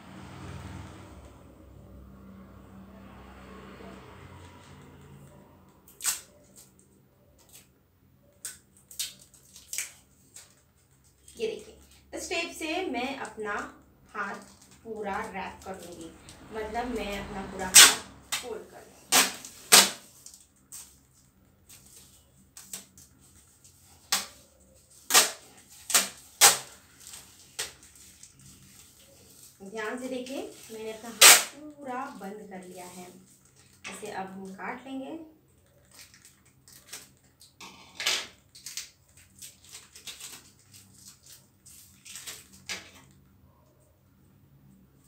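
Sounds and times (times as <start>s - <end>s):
packing tape ripping off roll: 5.9s - 6.8s, 8.4s - 11.4s, 17.7s - 29.6s, 30.5s - 31.7s, 35.8s - 43.2s.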